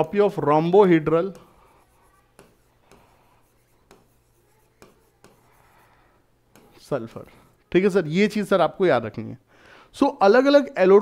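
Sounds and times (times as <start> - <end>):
stylus tapping on whiteboard: 2.3 - 3.1, 3.8 - 4.2, 4.8 - 5.5, 6.5 - 6.8.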